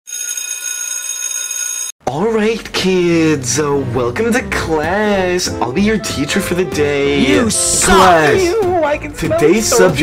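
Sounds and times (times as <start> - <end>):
electric bell ringing: 0.1 - 1.9.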